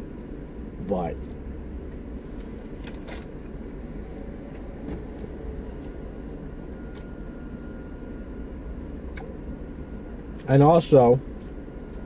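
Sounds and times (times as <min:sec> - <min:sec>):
low hum in car cabin: 0:00.0 - 0:12.0.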